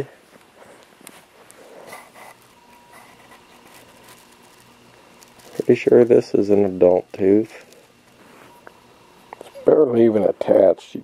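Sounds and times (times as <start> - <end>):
soft handling rustling: 0.0 - 10.8.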